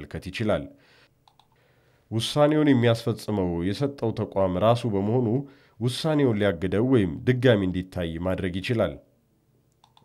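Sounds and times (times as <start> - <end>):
man narrating: 0.0 - 0.8, 2.1 - 9.1
faint clicks: 1.2 - 1.6, 9.7 - 10.0.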